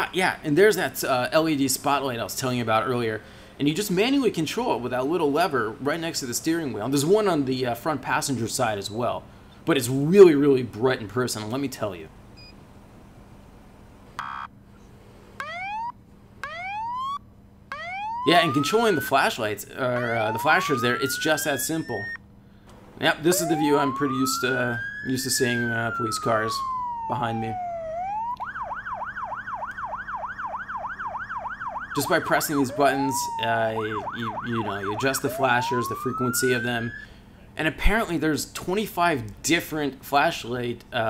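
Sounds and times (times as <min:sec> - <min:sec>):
police siren bursts: 0:15.4 - 0:22.3, 0:23.0 - 0:37.3.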